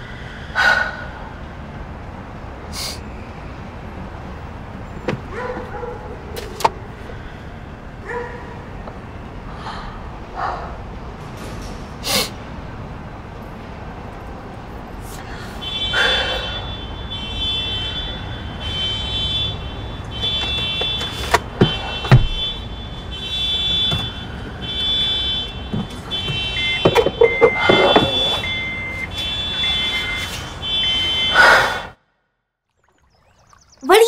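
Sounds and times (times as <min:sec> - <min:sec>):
car alarm tone: 0:15.6 - 0:32.0.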